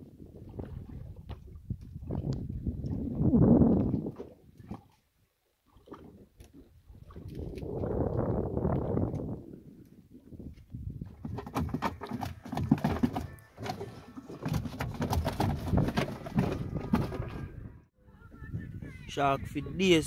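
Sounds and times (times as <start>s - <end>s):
knocks against wooden hull: 11.1s - 17.4s
water washing against boat: 11.1s - 17.7s.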